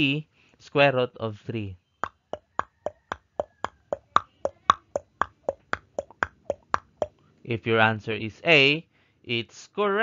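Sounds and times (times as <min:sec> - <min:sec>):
timer ticking: 0:02.0 - 0:07.2.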